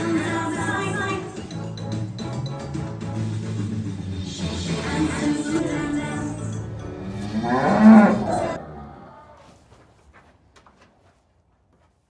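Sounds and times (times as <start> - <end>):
background music: 0.0 - 8.6
cow mooing: 7.0 - 9.5.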